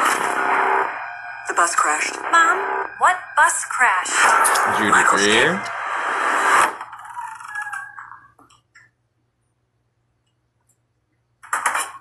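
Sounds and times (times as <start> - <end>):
loud burst of noise: 0.0 - 6.8
movie trailer soundtrack: 0.0 - 7.0
fading tones: 0.2 - 6.9.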